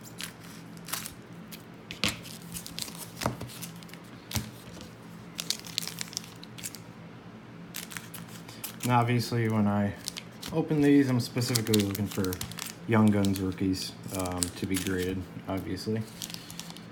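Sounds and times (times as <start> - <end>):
wrappers crinkling: 0.0 - 6.9, 7.7 - 16.9
scissors snipping wrappers: 7.8 - 16.9.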